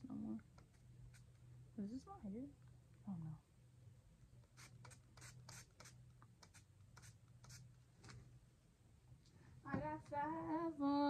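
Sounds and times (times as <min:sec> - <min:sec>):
low steady hum: 0:00.0 - 0:11.0
spray bottle spritzes: 0:04.5 - 0:07.6.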